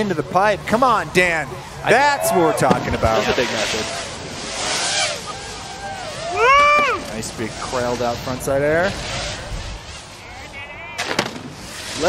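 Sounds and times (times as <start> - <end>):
snowboard edge scraping snow: 2.8 - 5.8, 6.4 - 10.4, 11.4 - 12.0.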